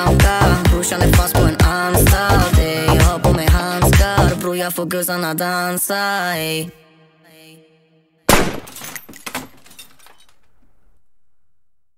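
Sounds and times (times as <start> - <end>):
scatter of cracks and clatters: 8.5 - 10.8.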